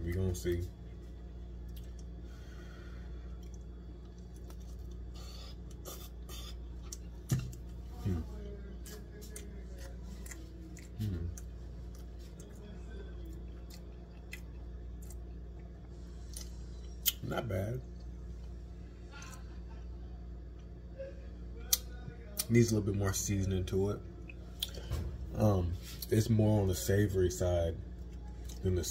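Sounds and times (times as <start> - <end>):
steady low hum: 0.0 - 28.9
person chewing noodles: 1.5 - 2.2, 3.1 - 17.2, 24.2 - 24.8, 27.9 - 28.7
person humming mm: 11.0 - 11.4.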